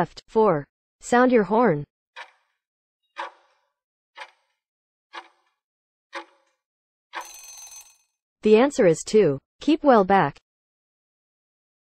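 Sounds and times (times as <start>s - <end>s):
clock-like timer ticks: 2.2s - 2.5s, 3.2s - 3.6s, 4.2s - 7.7s.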